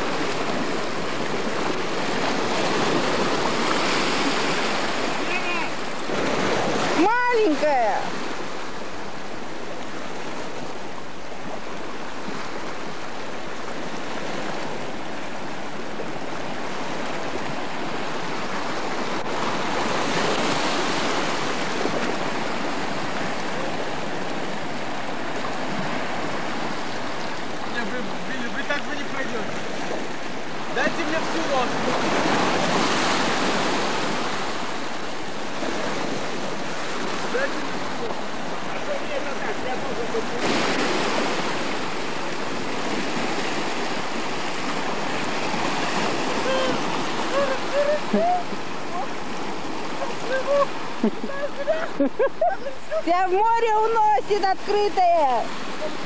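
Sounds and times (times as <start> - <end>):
sea waves on rocky shore: 0.0 - 56.0.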